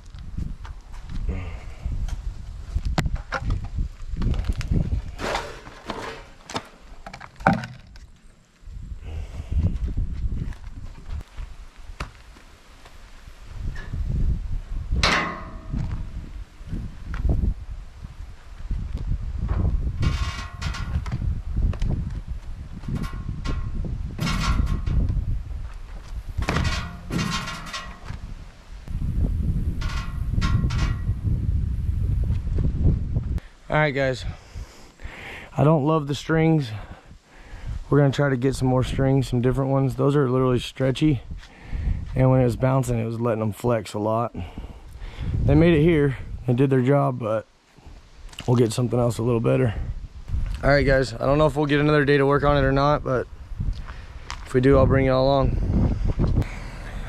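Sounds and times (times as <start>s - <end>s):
wind rumbling on microphone: 0.0s - 43.2s, 44.4s - 46.6s, 47.8s - 57.0s
metal knocks and clanks: 15.0s - 16.0s, 19.5s - 21.2s, 22.8s - 25.2s, 26.4s - 28.2s, 29.8s - 31.2s.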